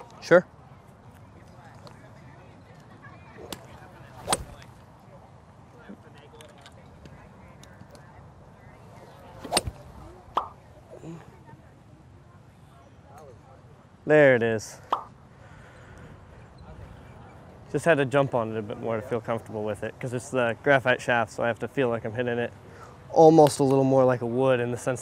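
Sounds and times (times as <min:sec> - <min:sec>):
golf club striking ball: 0:04.2 - 0:04.7, 0:09.4 - 0:10.6.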